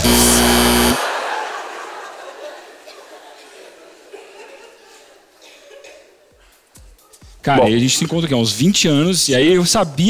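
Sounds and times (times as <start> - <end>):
loud buzzer: 0.0 - 1.2
audience laughter: 0.5 - 6.3.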